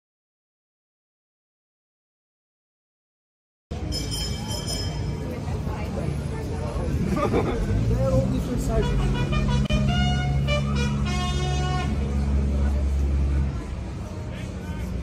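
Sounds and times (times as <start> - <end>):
vehicle engine rumbling: 3.7 - 15.0
horn blasts: 8.6 - 12.3.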